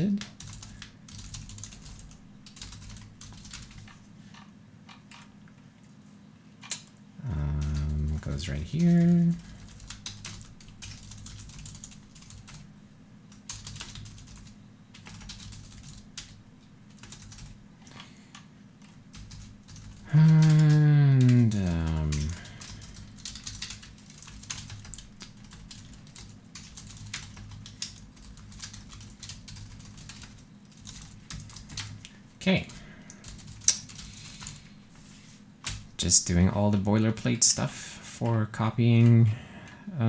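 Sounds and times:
computer keyboard typing: 0.2 - 5.3, 6.7 - 12.7, 13.3 - 17.6, 18.3 - 34.6
man humming falling note: 20.1 - 22.4.

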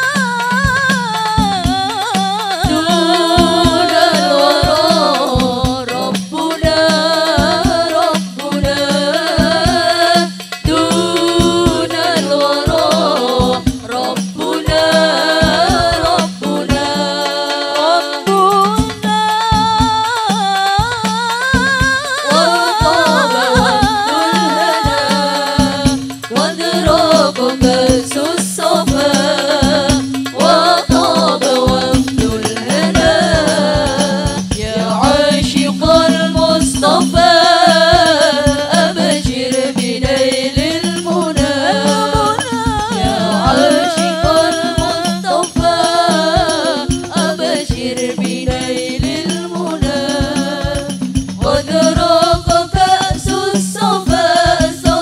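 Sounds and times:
sharp percussion beats: 0.0 - 55.0
women singing together: 0.0 - 55.0.

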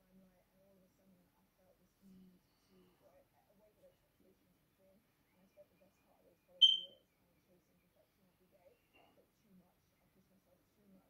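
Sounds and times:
high-pitched beep: 6.6 - 7.0.

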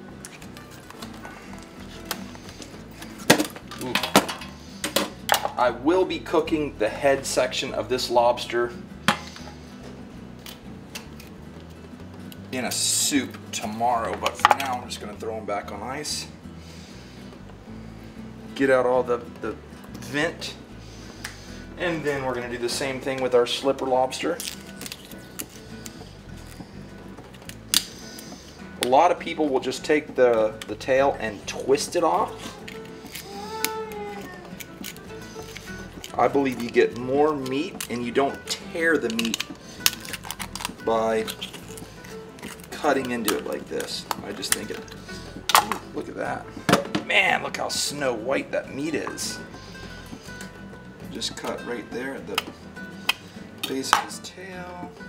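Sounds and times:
background music: 0.0 - 55.0.

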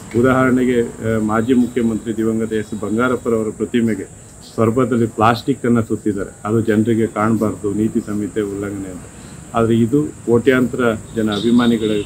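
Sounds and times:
high-pitched whine: 0.0 - 12.0
man speaking into a microphone: 0.1 - 12.0.

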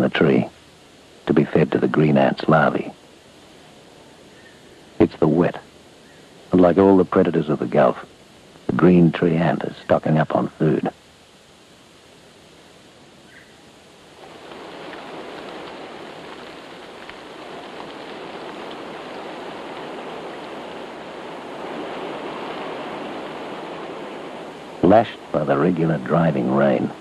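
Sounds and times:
faint hiss: 0.0 - 27.0
heavy rain: 0.0 - 27.0.

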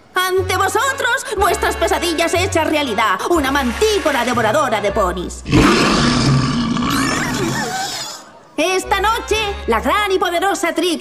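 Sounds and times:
cartoon monster roar: 5.4 - 8.2.

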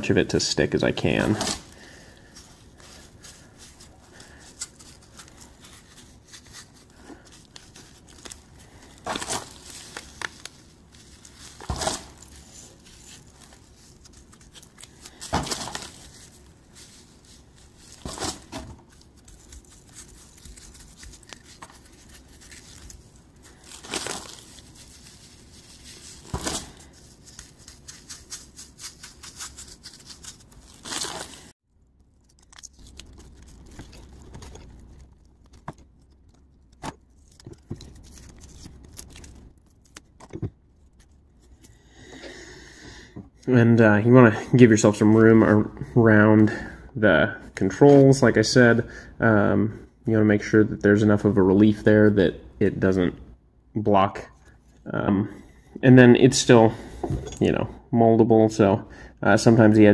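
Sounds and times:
grit rustling and scraping: 0.8 - 41.7.

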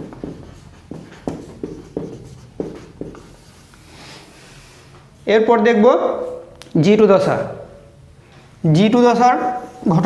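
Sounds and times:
marker writing on whiteboard: 0.0 - 3.9, 9.3 - 10.0.

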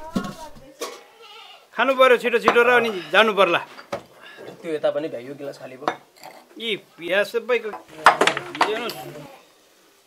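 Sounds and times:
metal pots clinking: 7.8 - 9.2.

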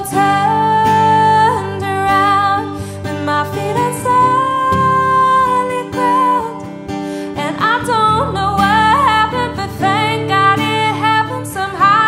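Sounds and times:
acoustic guitar: 0.0 - 12.0
woman singing: 0.0 - 12.0.

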